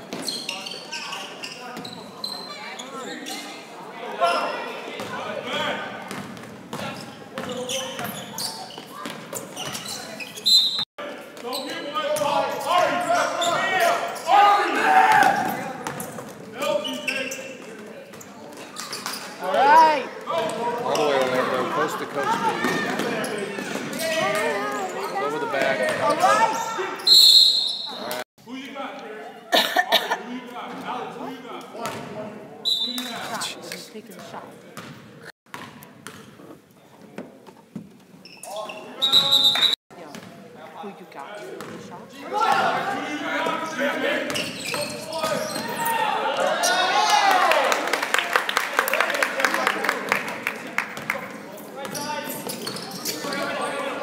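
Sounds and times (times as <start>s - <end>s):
basketball bouncing on court floor: 6.1s - 9.9s, 34.8s - 36.3s, 40.1s - 40.4s
players and spectators shouting: 11.8s - 15.6s, 19.4s - 27.1s, 42.1s - 44.3s, 45.0s - 47.9s.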